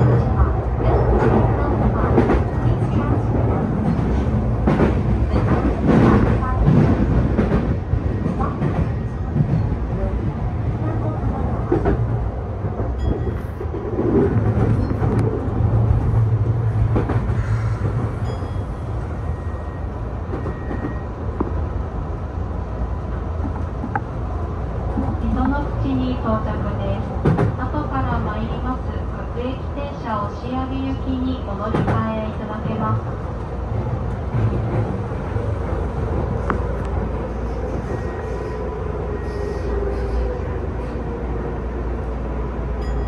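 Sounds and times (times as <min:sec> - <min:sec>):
train wheels rumbling on rail: 0:00.0 - 0:43.0.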